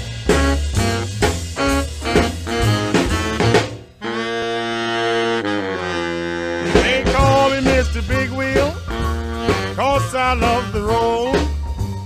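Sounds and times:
drums and bass: 0:00.0 - 0:12.0
rhythm and blues instrumental: 0:00.0 - 0:12.0
saxophones and brass chords: 0:00.0 - 0:12.0.

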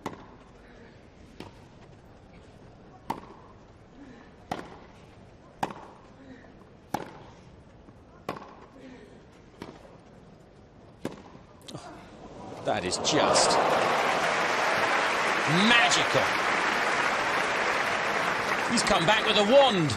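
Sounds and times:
tennis racquets hitting ball: 0:05.6 - 0:06.0, 0:06.9 - 0:07.3, 0:08.2 - 0:08.7, 0:11.0 - 0:11.4.

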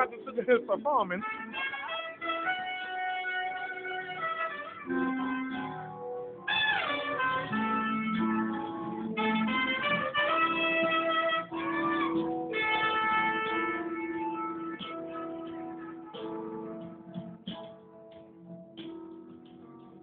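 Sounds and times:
guitar: 0:00.0 - 0:20.0
trumpet: 0:01.1 - 0:17.7.

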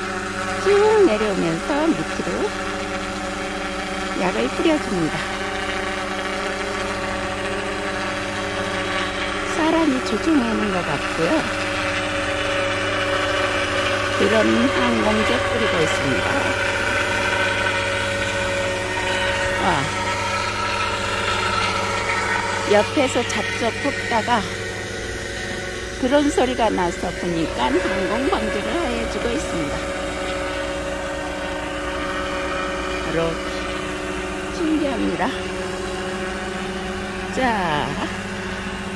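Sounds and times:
helicopter engine and rotor: 0:00.0 - 0:38.9.

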